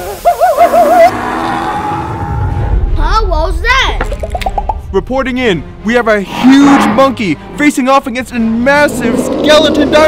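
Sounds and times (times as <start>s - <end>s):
steady tone with hiss: 0.0s - 1.3s
person laughing in hooting voice: 0.0s - 1.4s.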